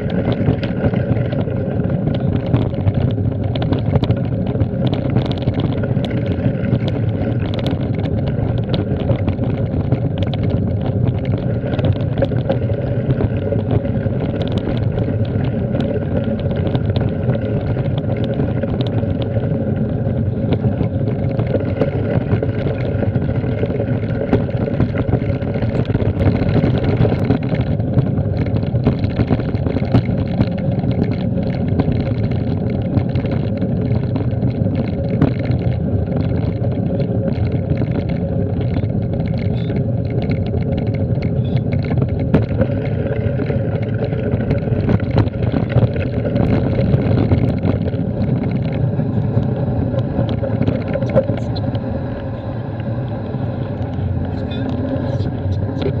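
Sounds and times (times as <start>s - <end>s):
bike tyres on gravel: 0.0s - 56.0s
small clicks and rattles: 0.0s - 56.0s
wind rumble on microphone: 0.0s - 56.0s.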